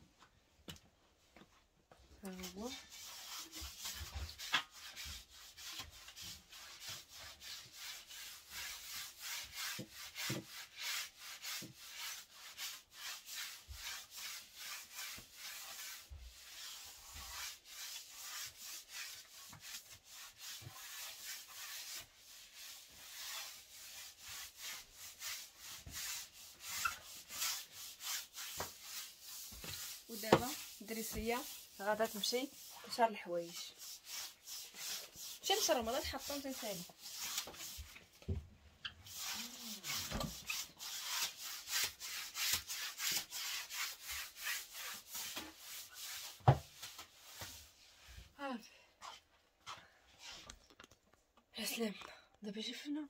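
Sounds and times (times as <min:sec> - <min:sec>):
broom sweeping tiled floor: 0:01.4 - 0:50.5.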